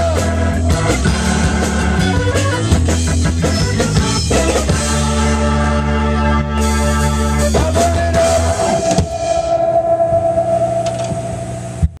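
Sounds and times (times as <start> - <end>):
held organ note: 0.6 - 12.0
steady low hum: 8.3 - 12.0.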